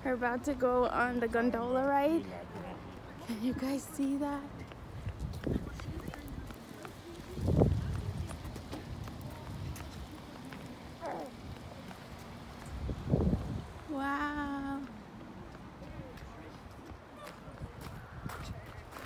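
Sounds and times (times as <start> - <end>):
footsteps on pavement: 0.0 - 19.0.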